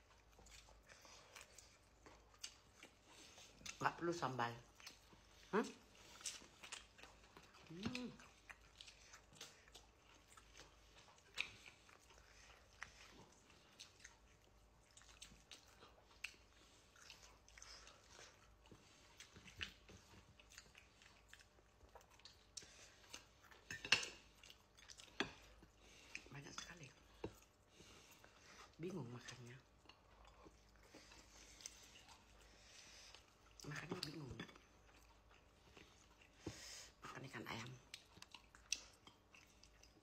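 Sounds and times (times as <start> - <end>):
person chewing food: 0.0 - 40.0.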